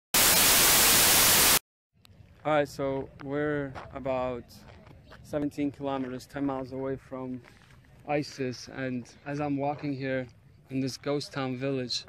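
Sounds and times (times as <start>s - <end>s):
television static hiss: 0.2s - 1.6s.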